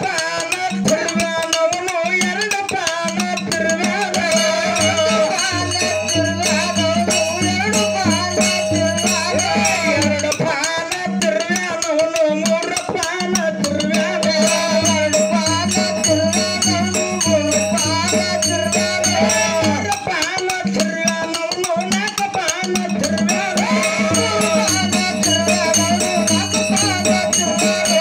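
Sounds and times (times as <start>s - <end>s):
fast rattling percussion: 0.0s - 28.0s
wavering sung melody: 3.8s - 10.4s, 13.7s - 20.0s, 23.0s - 28.0s.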